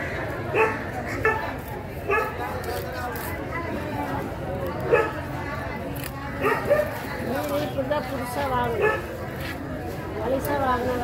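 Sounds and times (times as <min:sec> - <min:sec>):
background chatter: 0:00.0 - 0:11.0
people talking: 0:00.0 - 0:11.0.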